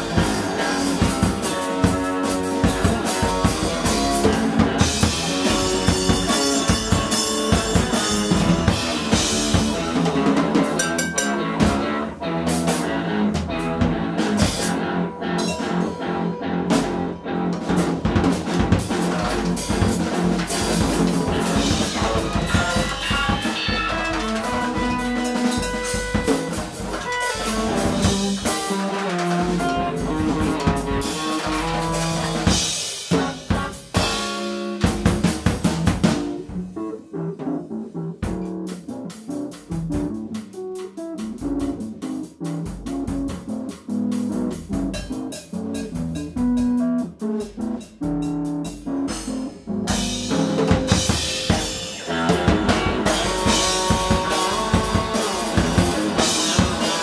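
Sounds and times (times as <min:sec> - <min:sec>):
electric guitar through amplifier: 0:00.0 - 0:34.4, 0:49.8 - 0:57.0
drum kit playing: 0:00.0 - 0:57.0
bass drum and rimshot strokes: 0:16.7 - 0:36.8.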